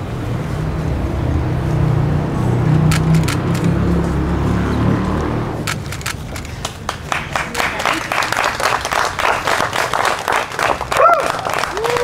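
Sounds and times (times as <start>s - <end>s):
low engine rumble: 0.0s - 12.0s
sharp clicks: 2.9s - 3.8s, 5.6s - 6.6s.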